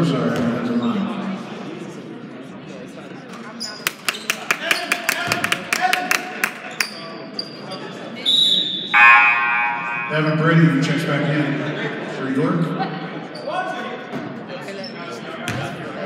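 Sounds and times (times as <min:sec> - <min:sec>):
high whistle: 0:08.3 - 0:10.9
scoreboard horn: 0:09.0 - 0:10.9.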